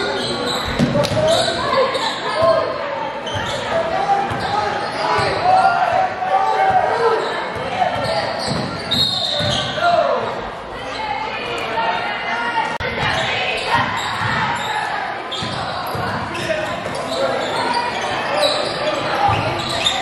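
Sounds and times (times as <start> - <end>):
voices calling out: 0.0 - 20.0.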